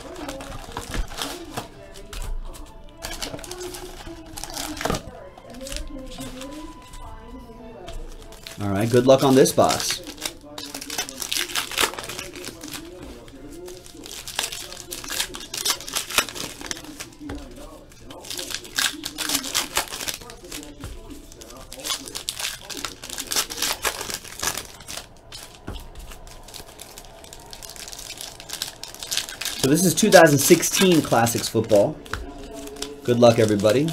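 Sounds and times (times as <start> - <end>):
cards being handled: 0.0 - 7.1, 7.8 - 33.9
card wrappers crinkling: 0.0 - 7.2, 7.8 - 33.9.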